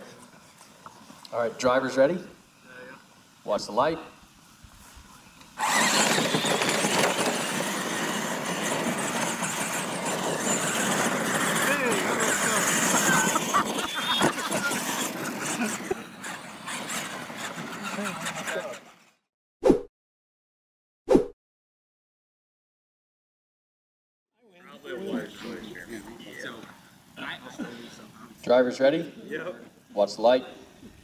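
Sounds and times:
electric motor and gear whine: 5.1 - 19.1
tyre noise on dirt: 5.2 - 18.8.

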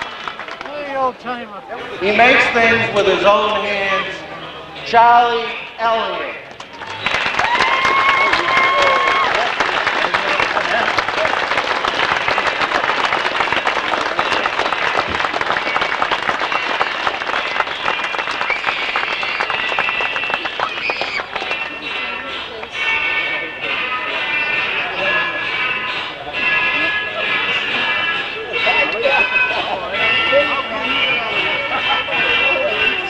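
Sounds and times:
crowd applauding: 0.0 - 3.6, 6.4 - 22.8
voices: 0.0 - 33.0
music: 15.6 - 33.0.

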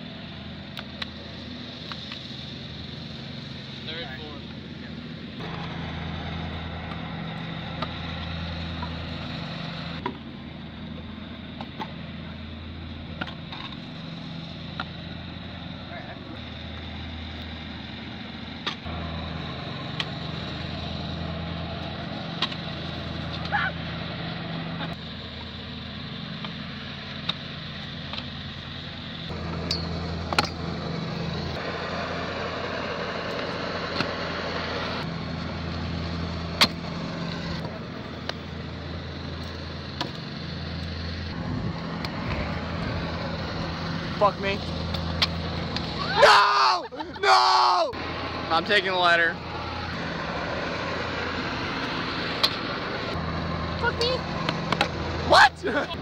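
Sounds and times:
scooter wheels rolling on asphalt: 11.0 - 47.3, 48.0 - 56.0.

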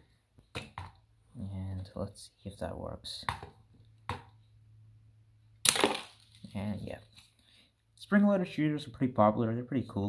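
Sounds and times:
toy shooter snapping: 5.6 - 6.2
plastic projectile clattering on table: 5.6 - 6.4.

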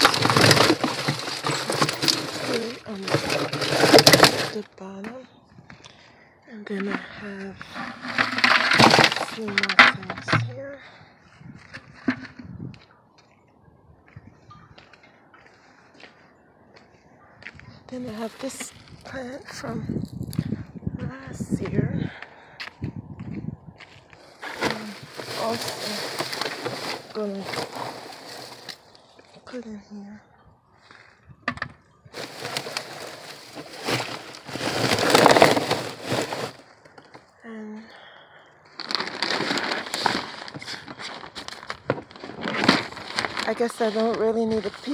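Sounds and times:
dry stems and soil rustling on plastic: 0.0 - 5.0, 6.7 - 10.9, 24.2 - 29.6, 32.1 - 37.2, 38.7 - 44.9
faint rustling: 23.9 - 29.5, 32.2 - 37.3.

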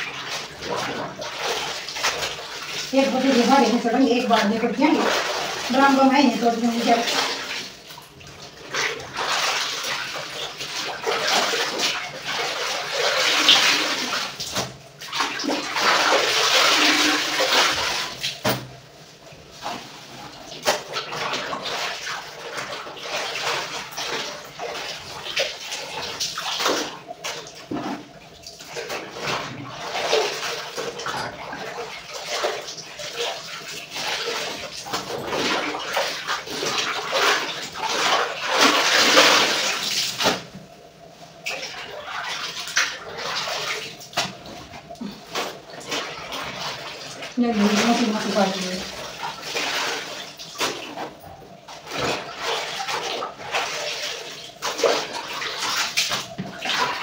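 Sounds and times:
clothes splashing in water: 0.0 - 57.0.

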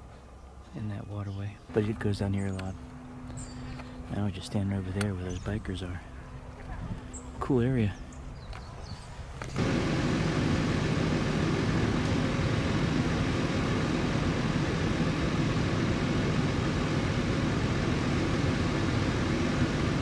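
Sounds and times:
distant traffic rumble with hiss: 0.0 - 20.0.

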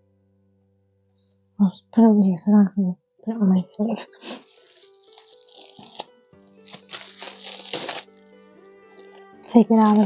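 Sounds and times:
soft background music: 0.0 - 10.0
plastic wrap crinkling: 4.2 - 10.0.

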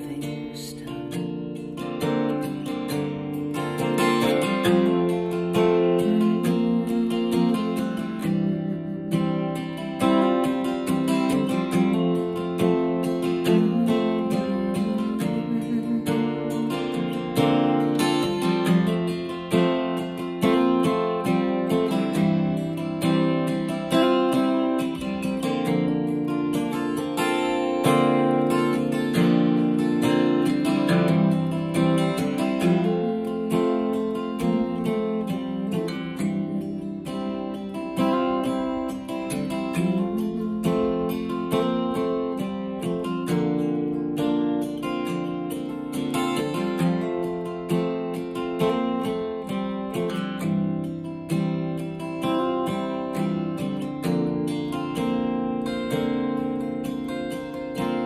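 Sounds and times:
acoustic guitar picking and strumming: 0.0 - 58.0.

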